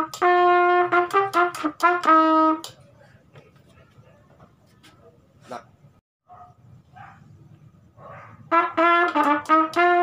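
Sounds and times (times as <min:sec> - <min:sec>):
distant dog barking: 0:06.2 - 0:07.3, 0:07.9 - 0:08.6.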